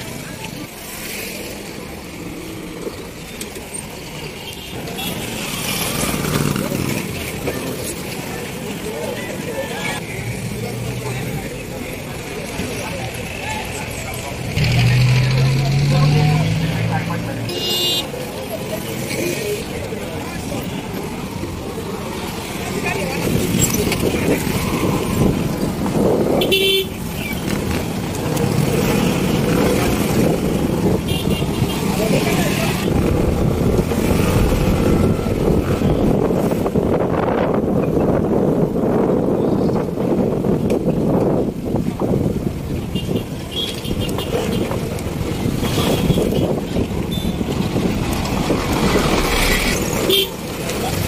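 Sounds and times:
motorcycles and cars passing: 0.0 - 51.0.

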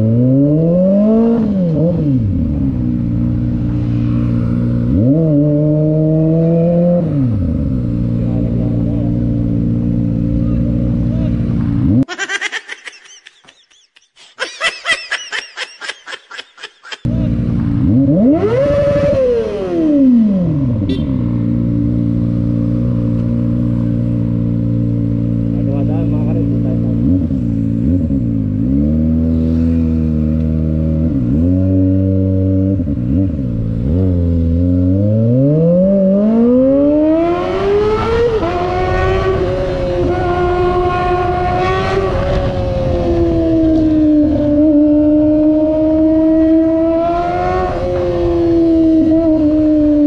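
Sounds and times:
motorcycle engine revving: 0.0 - 12.1, 17.0 - 50.0.

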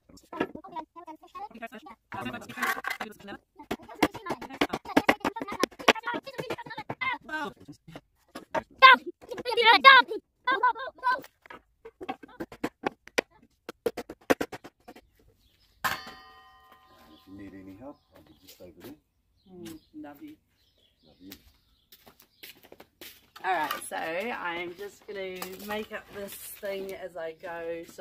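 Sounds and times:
ringing strike: 15.9 - 17.8.

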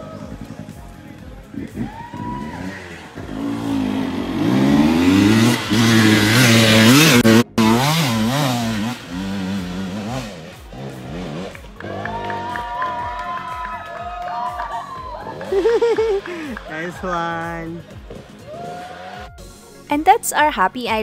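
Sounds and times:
dirt bike engine revving: 0.0 - 13.6, 15.1 - 19.3.

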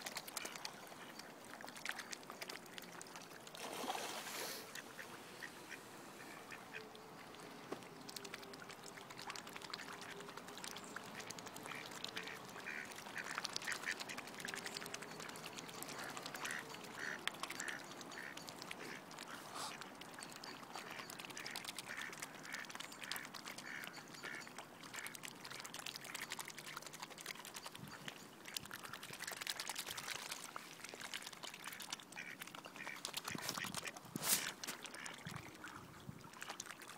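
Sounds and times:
waterfowl quacking: 11.2 - 19.8, 20.5 - 26.2, 31.6 - 35.9.

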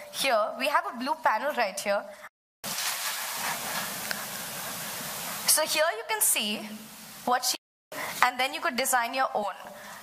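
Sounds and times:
steady hiss: 2.6 - 10.0.

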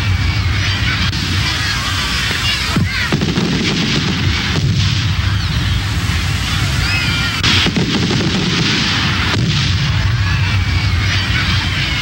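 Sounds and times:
fireworks booming and crackling: 0.0 - 12.0
sharp firework bang: 1.1 - 10.6.

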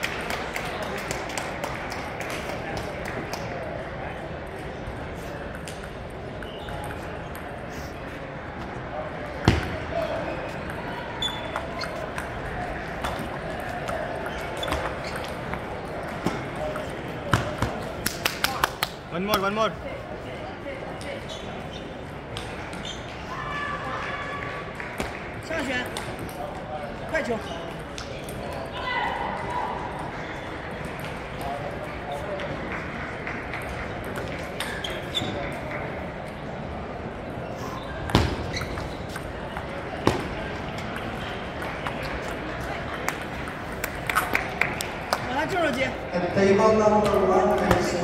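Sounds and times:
hall hubbub of voices: 0.0 - 48.0.

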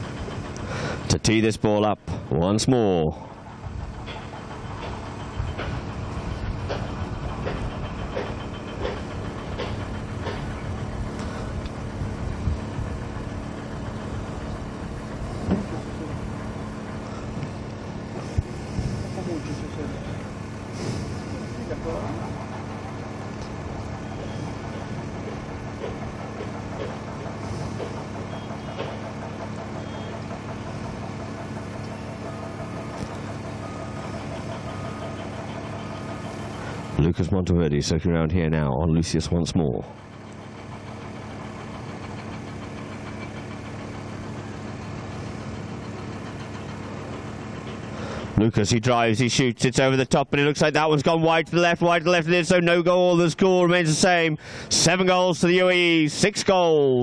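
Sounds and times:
motor hum: 0.0 - 57.0.

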